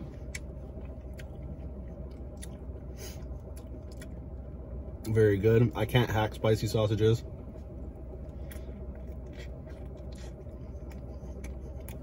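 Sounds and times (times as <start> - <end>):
chewing with clicks and smacks: 0.0 - 5.1, 7.5 - 12.0
low rumble inside car: 0.0 - 12.0.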